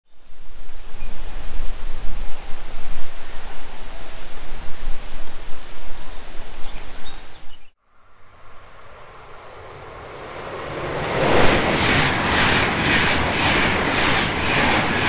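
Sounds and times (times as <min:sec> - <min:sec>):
wind buffeting microphone: 0:08.6 - 0:15.0.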